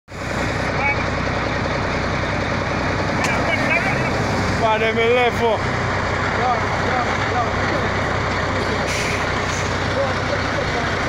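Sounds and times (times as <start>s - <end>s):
diesel truck engine running: 0.1s - 11.0s.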